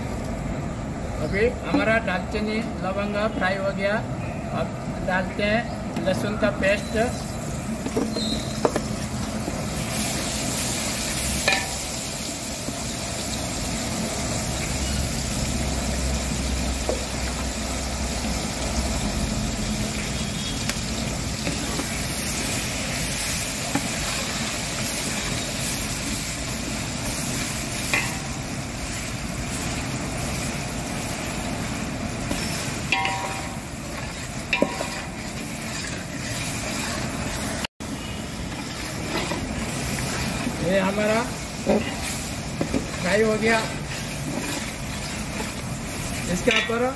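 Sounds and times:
garlic paste sizzling in oil: 0:05.3 - 0:46.9
metal spatula knocking pot: 0:32.9 - 0:33.6, 0:34.5 - 0:35.2, 0:46.3 - 0:46.9.

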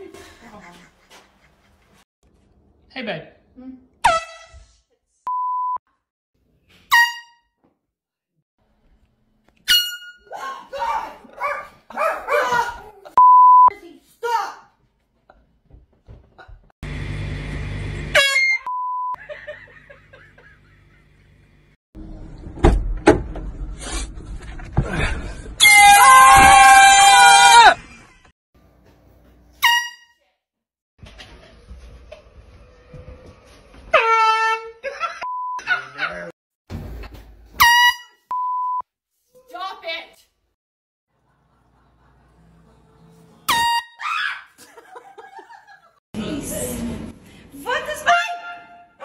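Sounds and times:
woman laughing: 0:00.0 - 0:02.0, 0:19.2 - 0:21.1, 0:34.8 - 0:36.3, 0:44.6 - 0:46.7
woman shouting: 0:10.3 - 0:11.3, 0:47.7 - 0:48.6.

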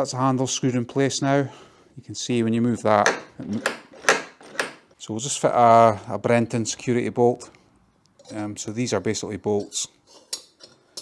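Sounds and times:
gate latch clicking: 0:03.0 - 0:04.8.

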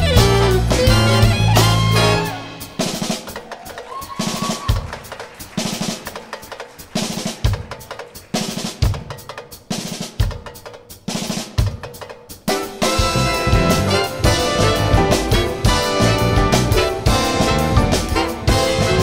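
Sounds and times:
bass drum accents: 0:00.0 - 0:03.5, 0:12.5 - 0:19.0
snare drum strokes: 0:00.7 - 0:19.0.

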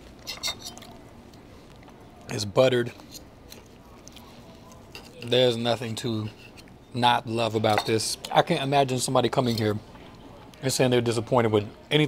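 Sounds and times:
knife and fork scraping a plate: 0:00.2 - 0:00.9, 0:06.1 - 0:06.7, 0:09.4 - 0:09.8.

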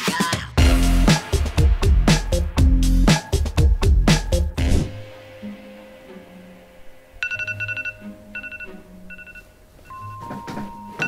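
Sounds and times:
faint background music: 0:04.6 - 0:11.0
phone alarm beeping: 0:07.2 - 0:11.0.

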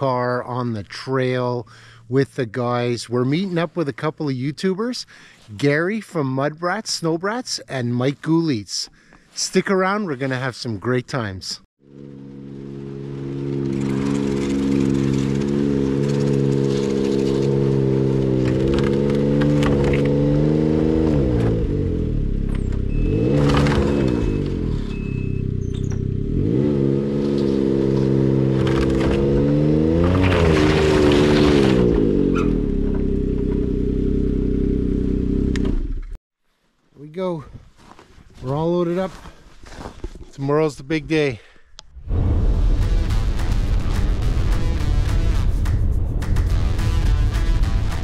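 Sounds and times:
snowmobile engine running and revving: 0:11.9 - 0:36.1.

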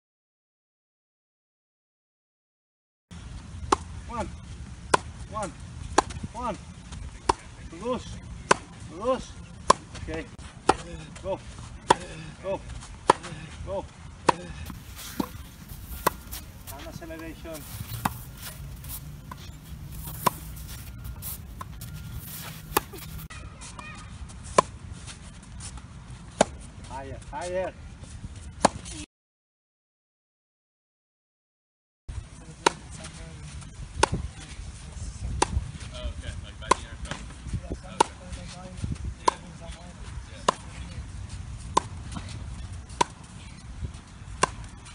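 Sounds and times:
tennis racket hitting ball: 0:14.3 - 0:23.3.

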